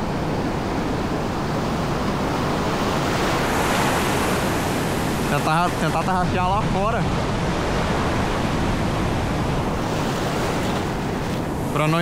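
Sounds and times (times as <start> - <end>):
waves breaking: 0.0 - 12.0.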